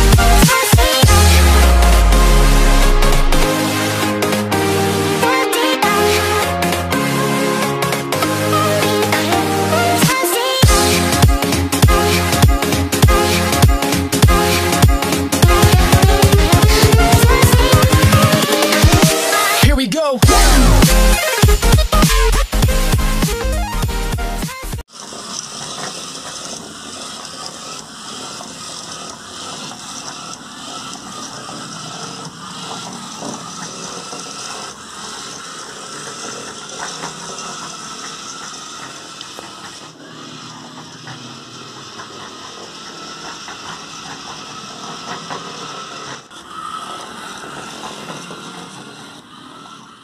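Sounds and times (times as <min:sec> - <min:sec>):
motors and gears whirring: 0:00.0 - 0:50.0.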